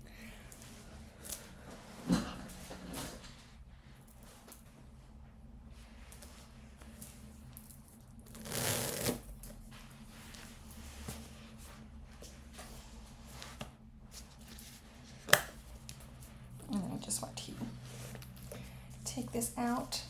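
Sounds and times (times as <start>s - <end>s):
low steady hum: 0.0s - 20.0s
leather and fabric rustling: 6.2s - 16.9s.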